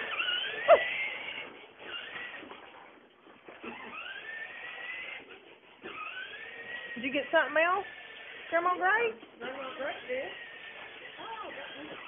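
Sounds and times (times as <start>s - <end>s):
small electric motor whining: 0.0s - 2.9s, 3.5s - 12.0s.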